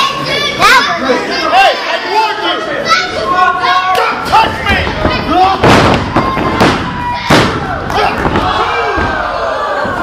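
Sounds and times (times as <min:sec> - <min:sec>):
spectators shouting: 0:03.2 - 0:10.0.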